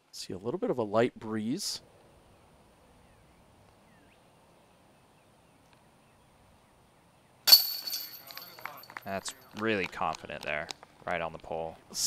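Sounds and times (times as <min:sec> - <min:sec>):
chains rattling and jingling: 0:07.5 - 0:09.0
disc hitting metal chains: 0:07.5 - 0:09.0.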